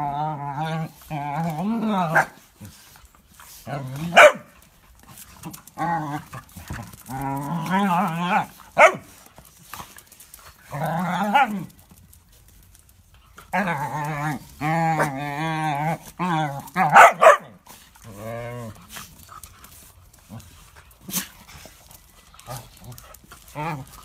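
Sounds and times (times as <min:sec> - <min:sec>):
small dogs barking: 0:02.1 - 0:02.4, 0:04.0 - 0:04.6, 0:08.7 - 0:09.2, 0:16.8 - 0:17.6.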